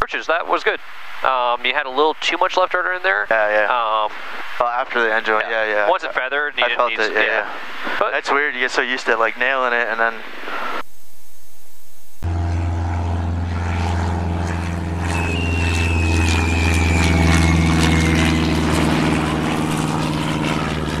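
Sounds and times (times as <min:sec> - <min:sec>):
propeller airplane engine drone: 0:00.0 - 0:10.8, 0:12.0 - 0:21.0
muffled cockpit noise: 0:00.0 - 0:21.0
high whistle gliding down: 0:15.0 - 0:18.7.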